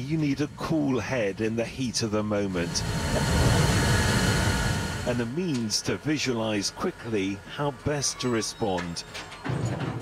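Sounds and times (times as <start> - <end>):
smoke and steam rushing roar: 2.4 - 6.3.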